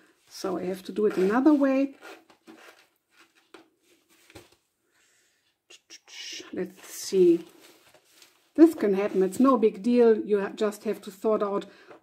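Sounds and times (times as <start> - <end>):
soft rustles and light taps: 2.4 - 4.7, 6.6 - 9.6.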